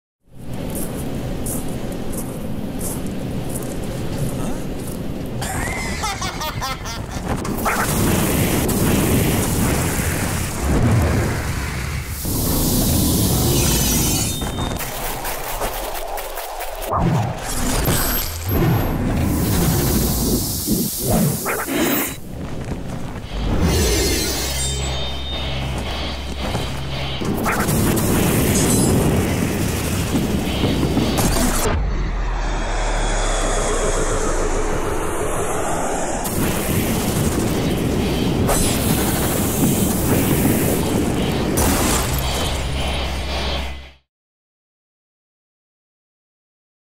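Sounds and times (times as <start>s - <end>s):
deep continuous rumble: 0.3s - 13.9s, 16.5s - 43.9s
rushing hissing noise: 0.8s - 16.8s, 19.1s - 43.8s
booms: 36.1s - 43.3s.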